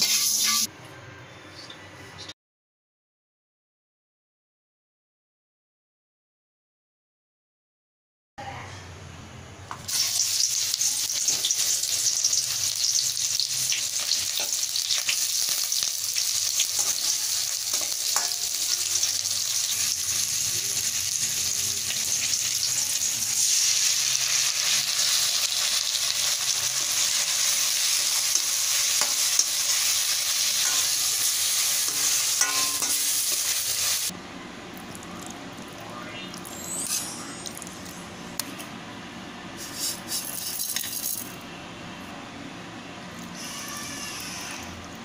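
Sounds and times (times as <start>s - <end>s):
onions sizzling in oil: 0.0s - 0.7s, 9.8s - 34.1s.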